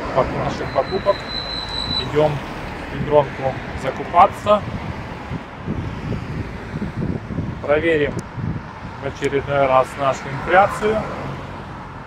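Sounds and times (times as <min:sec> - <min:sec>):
car traffic passing: 0:00.0 - 0:12.0
wind noise on microphone: 0:00.0 - 0:12.0.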